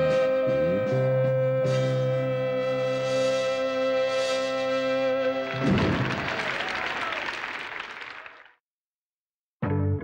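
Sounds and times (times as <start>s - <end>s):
audience applauding: 5.2s - 8.6s.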